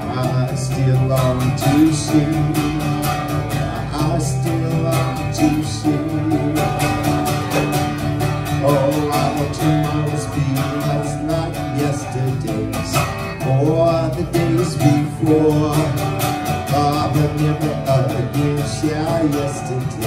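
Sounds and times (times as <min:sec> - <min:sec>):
acoustic guitar strumming: 0:00.0 - 0:20.0
man singing: 0:00.0 - 0:20.0.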